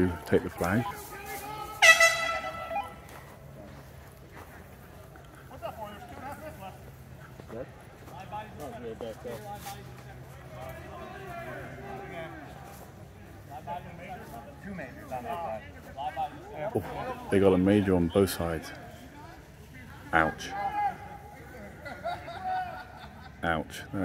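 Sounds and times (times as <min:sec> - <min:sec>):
distant voices: 0:00.0 - 0:24.0
horn blast: 0:01.8 - 0:03.0.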